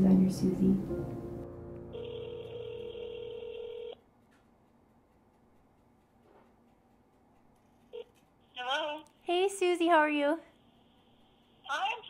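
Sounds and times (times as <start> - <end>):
telephone ringback tone: 1.9 - 4.0.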